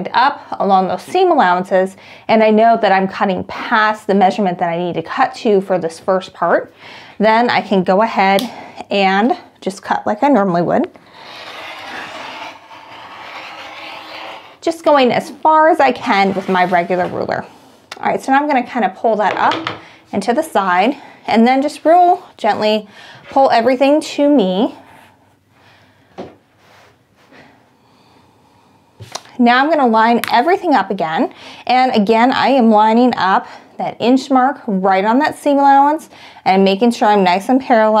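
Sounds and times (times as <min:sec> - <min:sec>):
rotary cutter slicing fabric: 0:11.1 - 0:14.6.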